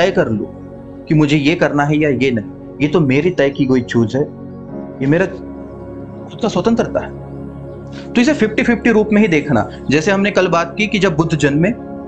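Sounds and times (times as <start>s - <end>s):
soft background music: 0.0s - 12.0s
man speaking: 1.1s - 4.3s, 5.0s - 5.4s, 6.3s - 7.1s, 8.0s - 11.8s.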